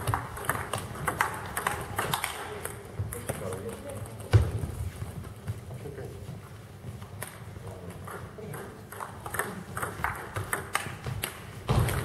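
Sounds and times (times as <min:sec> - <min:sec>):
table tennis balls clicking: 0:00.0 - 0:04.6, 0:07.2 - 0:12.0
voices in a hall: 0:00.0 - 0:12.0.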